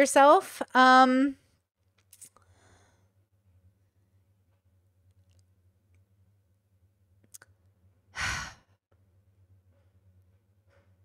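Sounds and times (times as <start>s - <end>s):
woman sighing: 8.2s - 8.7s.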